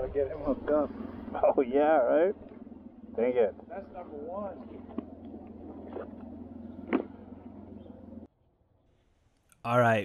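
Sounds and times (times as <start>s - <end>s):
vehicle engine idling: 0.0s - 8.3s.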